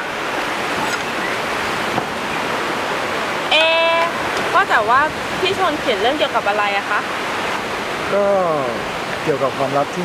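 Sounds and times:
surf breaking on shore: 0:00.0 - 0:10.0.

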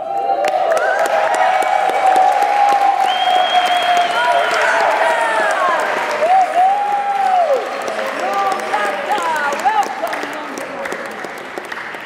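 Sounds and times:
whoops and shouts: 0:00.0 - 0:07.7
audience applauding: 0:00.0 - 0:12.0.

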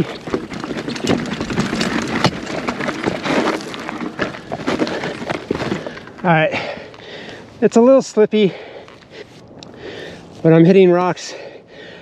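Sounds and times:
wheels knocking on rocks: 0:00.0 - 0:07.4
bike tyres crunching over stones: 0:00.0 - 0:10.7.

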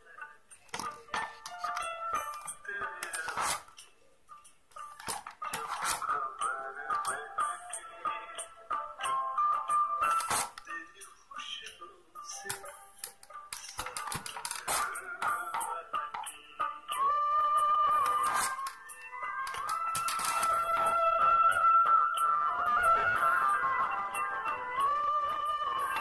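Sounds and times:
song from small speaker: 0:00.0 - 0:26.0.

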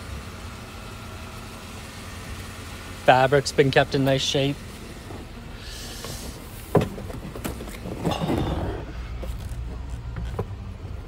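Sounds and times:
low steady rumble: 0:00.0 - 0:11.0.

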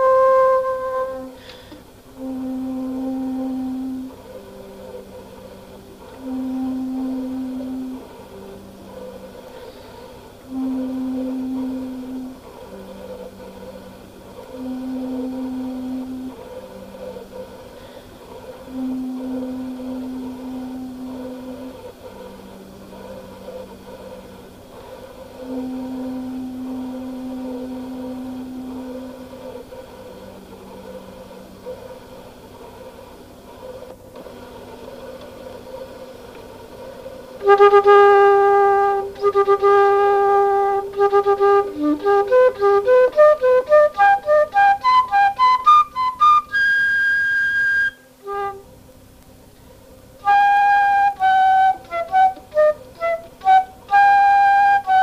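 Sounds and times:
alto flute long notes: 0:00.0 - 0:32.0, 0:37.1 - 0:48.8, 0:50.2 - 0:55.0.

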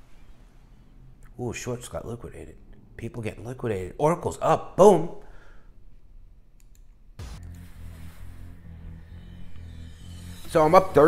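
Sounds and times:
computer mouse clicks: 0:06.6 - 0:07.0.

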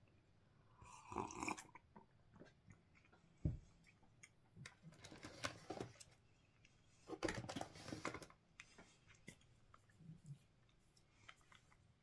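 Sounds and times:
person slurping from a mug: 0:00.7 - 0:01.8.

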